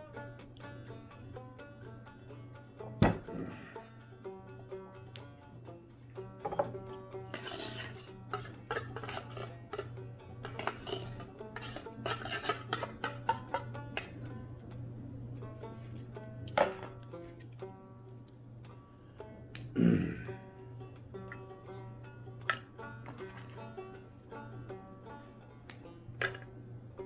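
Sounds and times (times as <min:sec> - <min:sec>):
banjo music: 0:00.0 - 0:27.0
steady low hum: 0:00.0 - 0:27.0.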